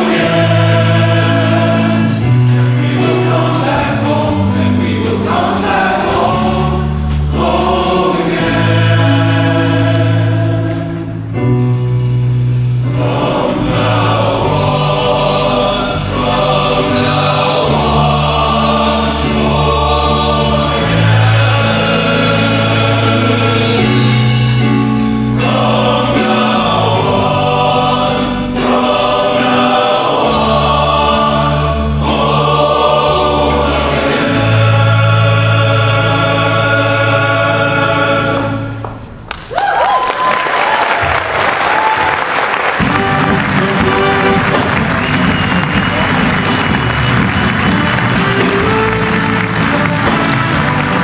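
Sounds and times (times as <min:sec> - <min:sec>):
male choir singing: 0:00.0 - 0:11.3, 0:12.8 - 0:38.9, 0:42.7 - 0:51.0
audience applauding: 0:39.3 - 0:51.0
audience whooping: 0:39.3 - 0:51.0.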